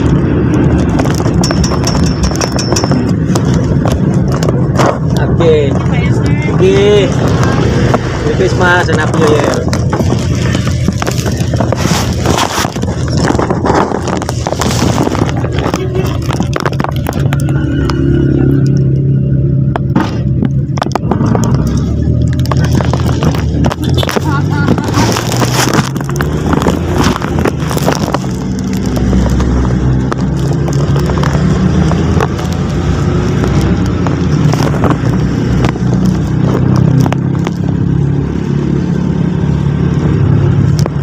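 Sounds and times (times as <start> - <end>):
body rattles and clicks: 0.0 - 19.1, 19.7 - 38.6, 40.0 - 41.0
vehicle engine and road rumble: 0.0 - 41.0
rattles and knocks: 0.7 - 5.9.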